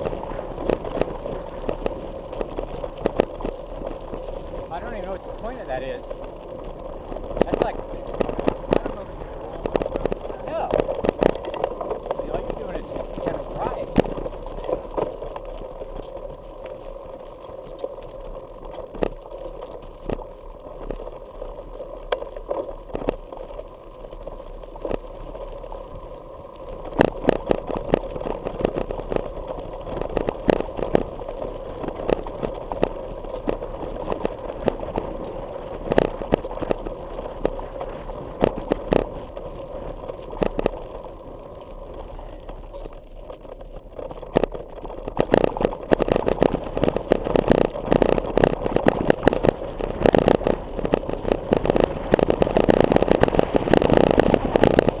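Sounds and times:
bike riding rumble: 0.0 - 55.0.

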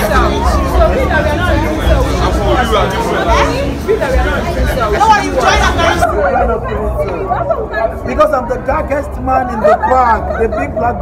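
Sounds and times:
crowd babble: 0.0 - 11.0
people talking: 0.0 - 11.0.

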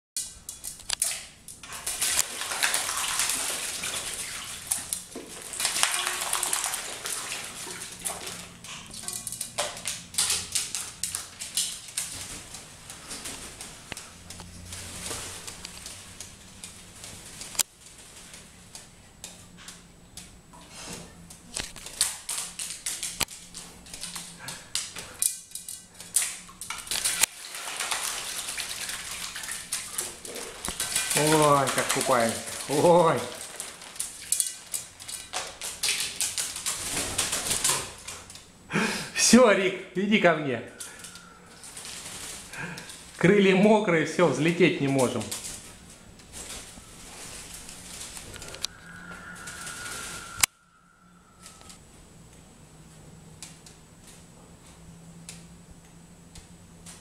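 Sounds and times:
bird splashing in water: 1.0 - 17.5, 26.0 - 38.2.

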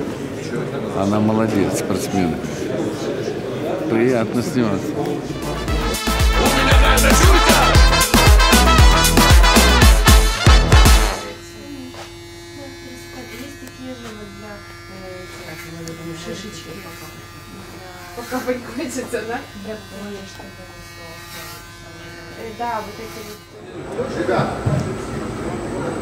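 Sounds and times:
electric hair clippers buzzing: 5.4 - 25.9
quiet talking: 11.0 - 26.0.

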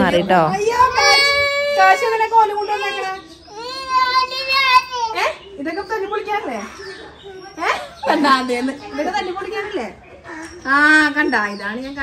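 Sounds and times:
toddler crying: 0.6 - 5.3.

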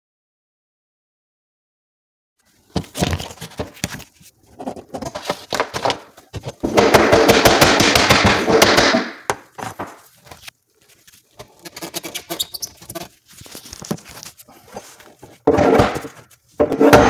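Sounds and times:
hammer striking wood cabinet: 6.6 - 10.0.

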